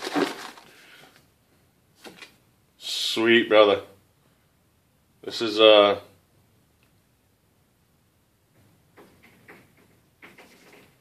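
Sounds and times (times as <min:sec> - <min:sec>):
packaging rustling: 0:00.0 - 0:01.0.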